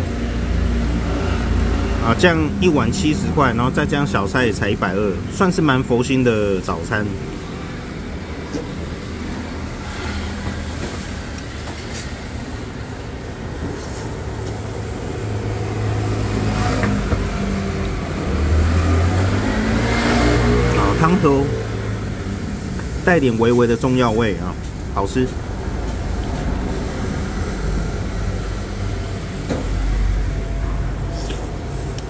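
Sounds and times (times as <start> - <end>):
road traffic rumble: 0.0 - 32.0
vehicle passing close by: 13.9 - 23.8, 24.8 - 32.0.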